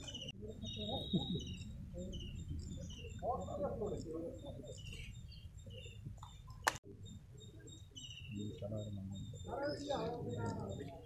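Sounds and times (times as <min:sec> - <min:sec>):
murmur of crowd voices: 0:00.0 - 0:11.0
thin steady high tone: 0:00.0 - 0:11.0
person speaking: 0:08.4 - 0:11.0.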